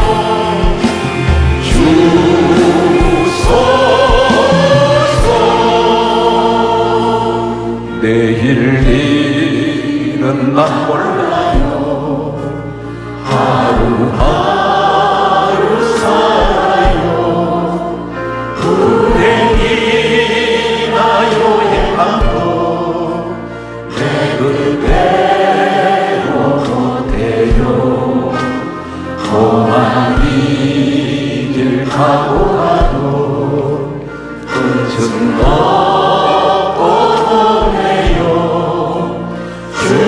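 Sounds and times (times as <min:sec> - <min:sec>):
group singing gospel song: 0:00.0 - 0:40.0
live band accompaniment: 0:00.0 - 0:40.0.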